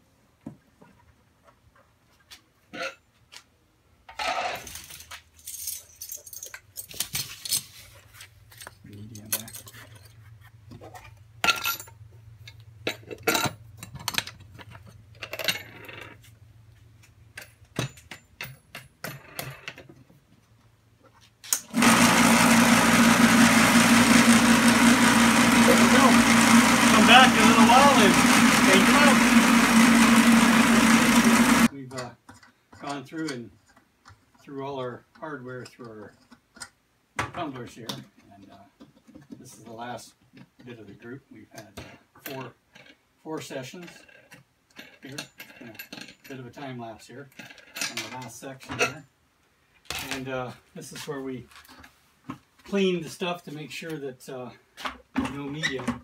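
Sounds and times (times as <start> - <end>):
vibratory tumbler humming and rattling: 21.7 - 31.7.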